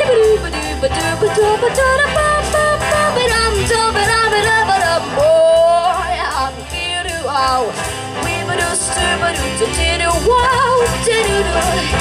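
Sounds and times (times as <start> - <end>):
instrumental backing track: 0.0 - 12.0.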